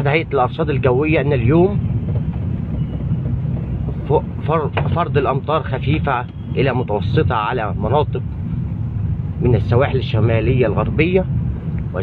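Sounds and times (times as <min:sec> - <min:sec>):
car engine rumble: 0:00.0 - 0:12.0
tyres on wet road: 0:00.0 - 0:12.0.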